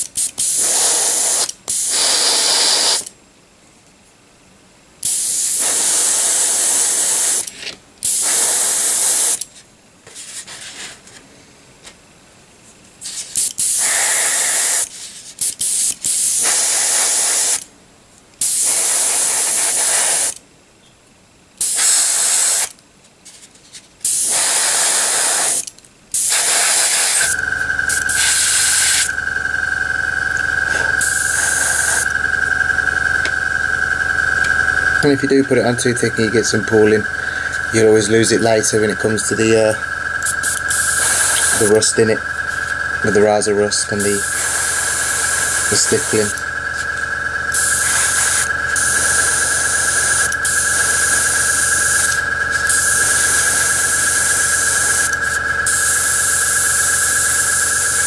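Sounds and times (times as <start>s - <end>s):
airbrush spraying hiss: 0.0s - 3.0s, 5.0s - 7.4s, 8.0s - 9.4s, 13.0s - 17.6s, 18.4s - 20.3s, 21.6s - 22.7s, 24.0s - 29.2s, 30.4s - 32.1s, 35.0s - 42.1s, 43.0s - 46.9s, 47.5s - 58.0s
motor hum with high whine: 24.4s - 58.0s.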